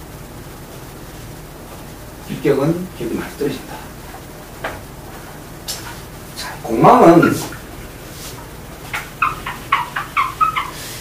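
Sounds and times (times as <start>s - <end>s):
whiteboard eraser squeaking: 8.9s - 11.0s.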